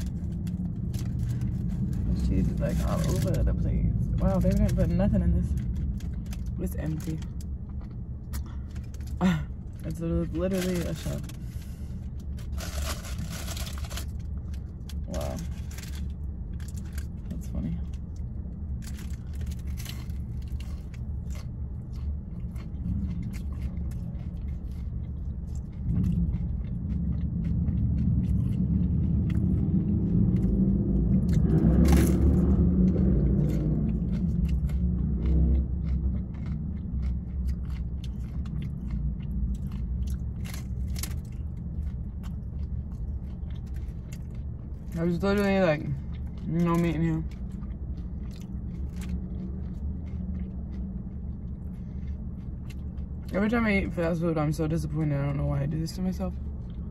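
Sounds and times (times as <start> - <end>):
crunching taco shell: 0.0 - 53.5
steady low rumble: 0.0 - 56.9.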